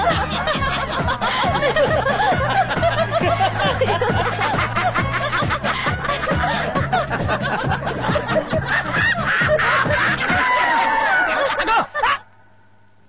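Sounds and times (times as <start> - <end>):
men laughing heartily: 0.0 - 12.3
background music: 0.0 - 12.8.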